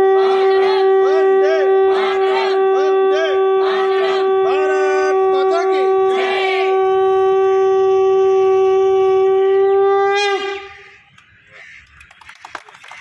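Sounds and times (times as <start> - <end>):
conch shell blown: 0.0 - 11.1.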